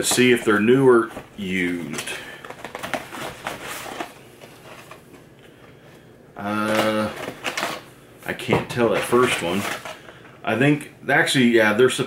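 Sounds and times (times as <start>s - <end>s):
cardboard box crinkling: 0.2s - 5.0s.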